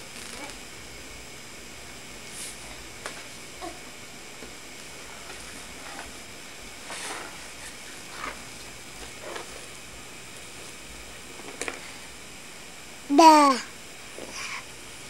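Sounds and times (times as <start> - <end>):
video tape hiss: 0.0 - 15.0.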